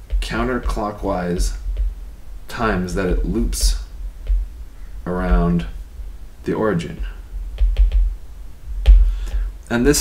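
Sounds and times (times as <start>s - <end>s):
stylus tapping on tablet screen: 0.0s - 2.0s, 2.6s - 4.6s, 5.2s - 5.8s, 7.0s - 8.2s, 8.8s - 9.4s.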